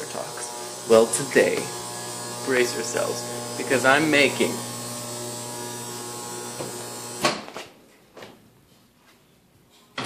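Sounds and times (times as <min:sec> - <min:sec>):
microwave oven humming: 0:00.0 - 0:07.2.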